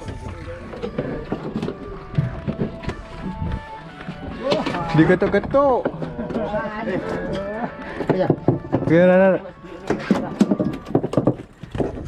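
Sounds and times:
men talking and calling out: 3.6s - 10.5s.

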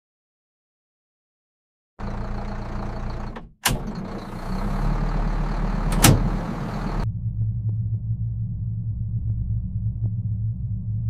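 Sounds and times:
large engine humming: 2.0s - 7.5s.

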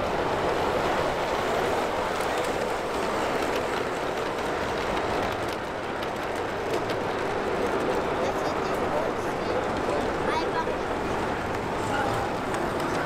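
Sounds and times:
model trains running on track: 0.0s - 13.0s
wheels clicking over rail joints: 0.0s - 13.0s.

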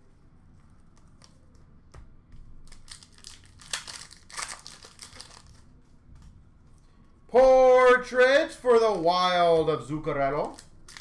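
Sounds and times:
wrapper crinkling and tearing: 2.7s - 5.7s, 10.2s - 11.0s.

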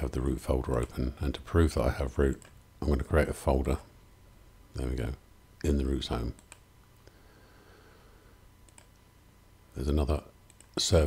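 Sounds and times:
computer mouse clicks: 2.3s - 2.6s, 6.3s - 7.1s, 8.6s - 9.1s, 10.4s - 10.8s.

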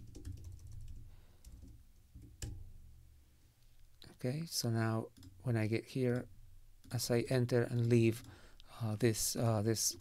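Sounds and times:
typing on computer keyboard: 0.0s - 2.6s.

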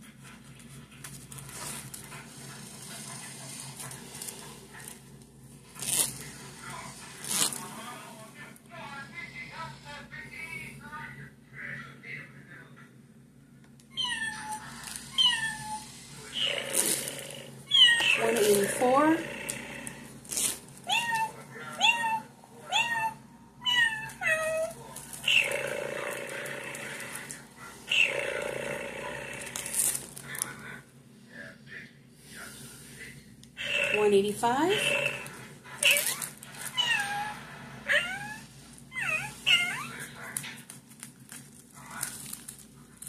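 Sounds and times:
cat meowing: 13.9s - 15.9s, 17.7s - 18.3s, 20.9s - 25.6s, 35.8s - 40.0s.

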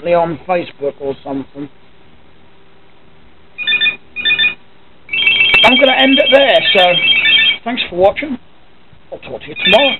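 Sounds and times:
telephone ringing: 3.6s - 7.7s, 9.6s - 9.9s.

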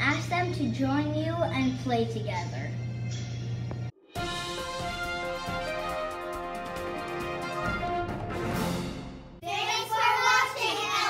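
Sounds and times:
theme music: 3.1s - 9.4s
girls chanting in sing-song: 9.4s - 11.0s.

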